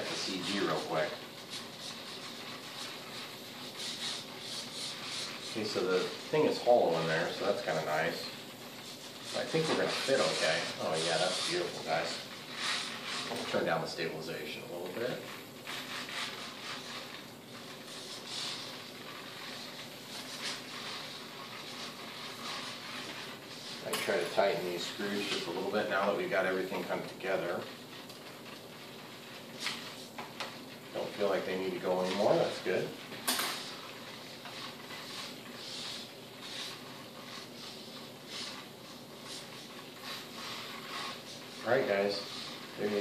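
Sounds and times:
foam glider rustling in hands: 0.0s - 43.0s.

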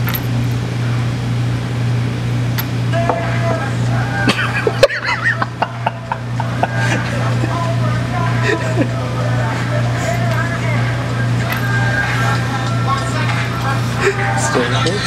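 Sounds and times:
steady low hum: 0.0s - 15.0s
faint indistinct chatter: 2.6s - 15.0s.

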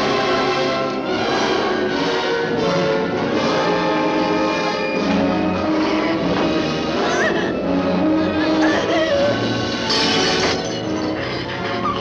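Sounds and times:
dramatic orchestral score: 0.0s - 12.0s
woman's choked cries: 7.0s - 7.6s, 8.3s - 12.0s.

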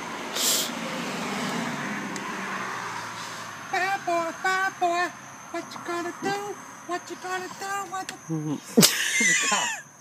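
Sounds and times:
vehicle driving past: 0.0s - 6.9s
short hiss: 0.3s - 0.8s.

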